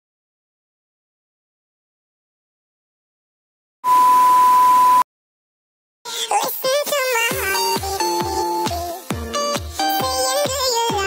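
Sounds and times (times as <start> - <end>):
high-pitched bleep: 3.8 - 5.0.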